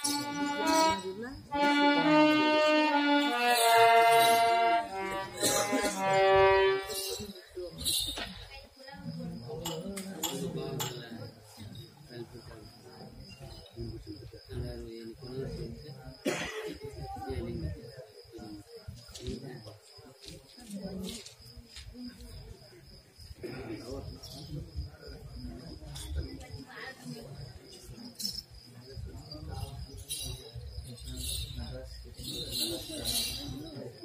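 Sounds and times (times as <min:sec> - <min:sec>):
crickets chirping: 0:00.0 - 0:34.0
faint voices talking: 0:00.0 - 0:34.0.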